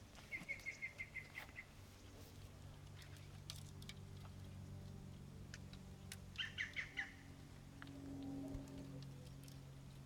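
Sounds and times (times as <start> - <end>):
low steady hum: 0.0 - 10.0
bird chirping: 0.2 - 2.1, 6.4 - 7.3.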